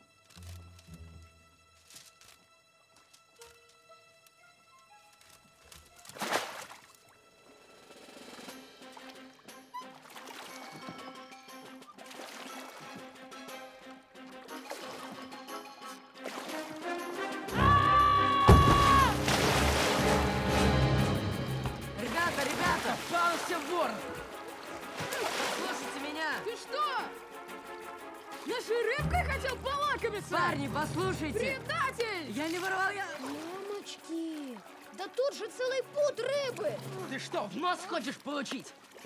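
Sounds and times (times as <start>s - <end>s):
film score music: 0.0s - 39.0s
water splashing and sloshing: 5.1s - 39.0s
water dripping: 8.8s - 39.0s.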